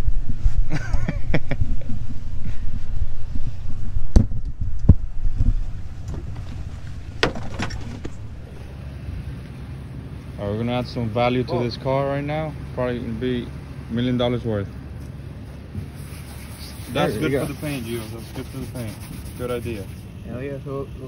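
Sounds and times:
low rumble in car: 0.0s - 21.0s
seat belt clicks and knocks: 4.2s - 8.7s.

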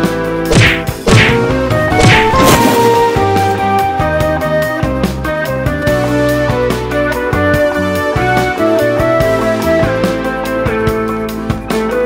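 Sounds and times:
music with sustained notes: 0.0s - 12.0s
punch thwacks with swish: 0.5s - 3.0s.

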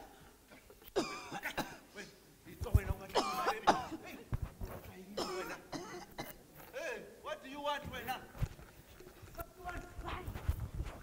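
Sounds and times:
cough-like outbursts: 0.5s - 1.9s, 3.1s - 4.2s, 5.2s - 6.4s.

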